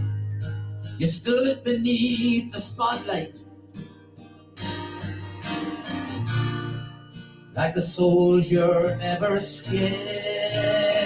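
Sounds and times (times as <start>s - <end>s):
acoustic guitar strums: 0.0s - 11.0s.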